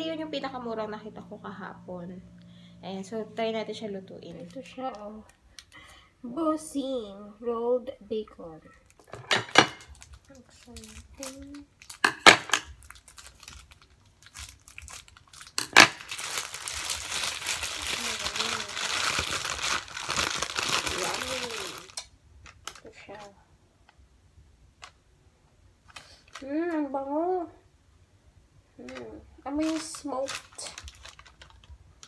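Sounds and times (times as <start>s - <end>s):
plastic packaging crinkling: 8.8s - 23.2s, 28.9s - 32.0s.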